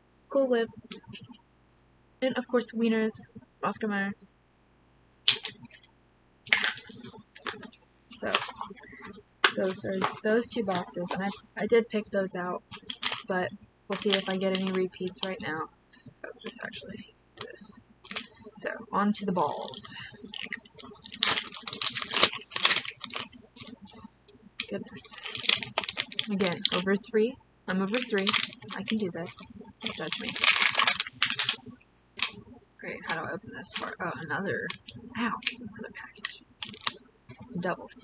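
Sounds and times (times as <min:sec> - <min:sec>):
toy items clacking: 0:05.3 - 0:05.6, 0:06.5 - 0:11.4, 0:12.7 - 0:13.3, 0:13.9 - 0:15.5, 0:17.4 - 0:18.4, 0:19.4 - 0:24.0, 0:24.6 - 0:27.0, 0:27.9 - 0:31.6, 0:33.0 - 0:34.0, 0:34.7 - 0:35.6, 0:36.2 - 0:37.6
plastic wrapping crinkling and tearing: 0:05.3 - 0:05.8, 0:06.5 - 0:11.4, 0:12.6 - 0:15.4, 0:17.4 - 0:18.6, 0:19.4 - 0:27.0, 0:27.9 - 0:32.4, 0:33.0 - 0:34.0, 0:34.6 - 0:38.0.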